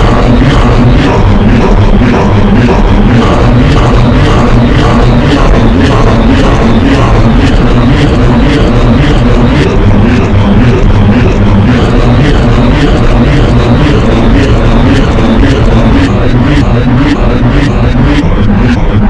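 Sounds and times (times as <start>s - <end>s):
distorted remix music: 0.0s - 19.0s
pulsing beat: 0.0s - 19.0s
warped voice-like sounds: 0.0s - 19.0s.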